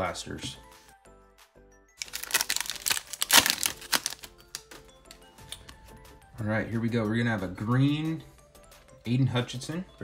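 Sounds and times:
foil wrapper tearing and crinkling: 2.0s - 4.7s.

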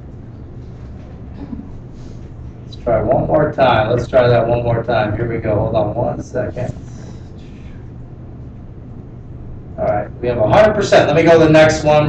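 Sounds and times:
steady low hum: 0.0s - 12.0s
man speaking: 2.7s - 6.8s, 9.8s - 12.0s.

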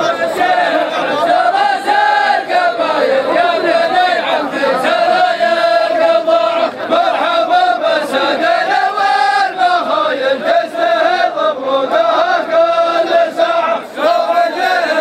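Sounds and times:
men chanting: 0.0s - 15.0s.

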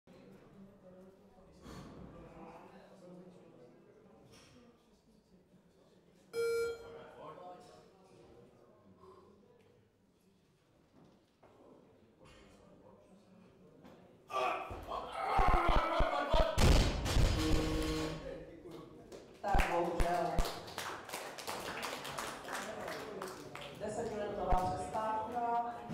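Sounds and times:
loud electronic buzzer tone: 6.4s - 6.8s, 17.4s - 18.3s
sudden thud: 16.6s - 17.9s.

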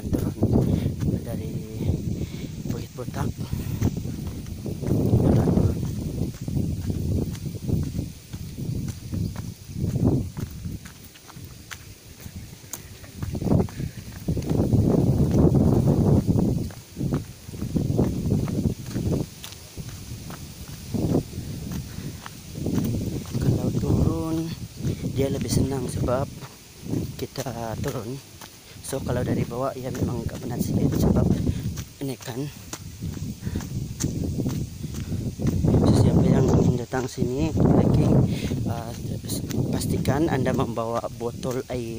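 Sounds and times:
footsteps on dirt trail: 0.0s - 41.9s
wind gusts on microphone: 0.0s - 41.9s.

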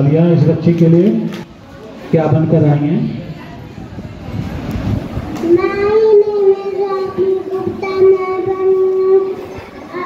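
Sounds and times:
girl singing into a microphone: 5.4s - 10.0s.

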